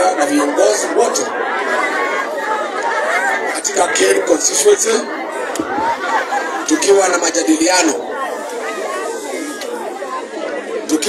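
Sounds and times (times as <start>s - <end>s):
background chatter: 0.0s - 11.0s
voices talking: 0.0s - 11.0s.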